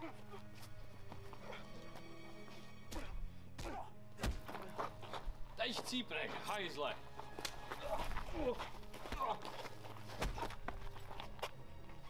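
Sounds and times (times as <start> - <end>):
footsteps and scuffling on path: 0.0 - 12.0.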